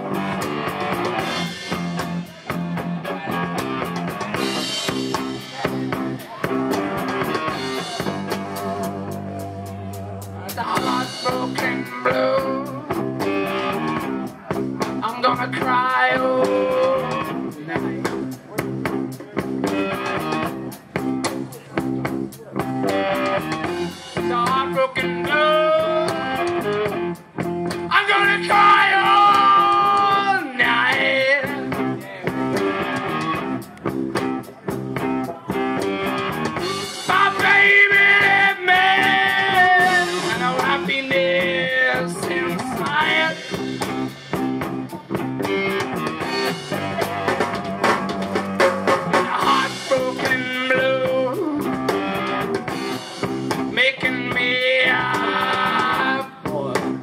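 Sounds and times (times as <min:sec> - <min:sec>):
man singing: 0:00.0 - 0:20.8, 0:21.4 - 0:33.8, 0:34.4 - 0:44.4, 0:49.0 - 0:57.0
bass guitar: 0:00.0 - 0:57.0
drum kit: 0:00.0 - 0:57.0
electric guitar: 0:00.0 - 0:57.0.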